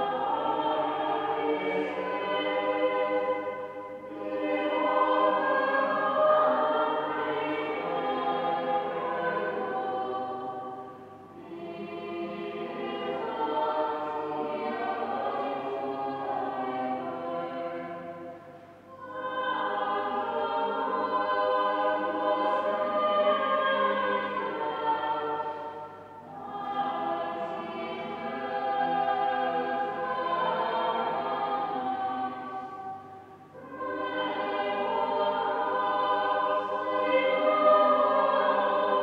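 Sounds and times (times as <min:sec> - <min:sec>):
choir singing sustained chords: 0:00.0 - 0:39.0.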